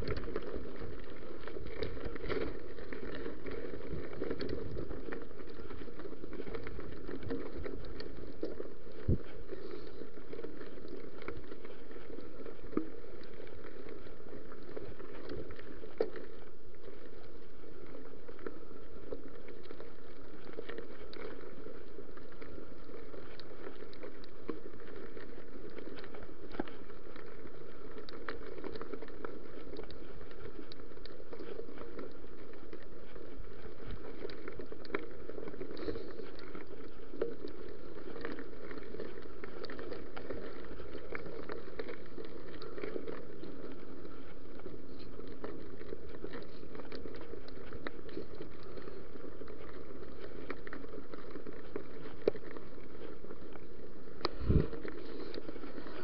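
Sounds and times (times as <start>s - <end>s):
bike tyres rolling on gravel: 0.0s - 56.0s
stones and bike rattling: 0.0s - 56.0s.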